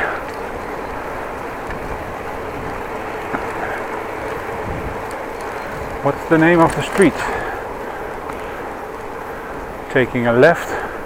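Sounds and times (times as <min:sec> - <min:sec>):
wind over microphone: 0:00.0 - 0:10.0
tyres rolling on asphalt: 0:00.0 - 0:11.0.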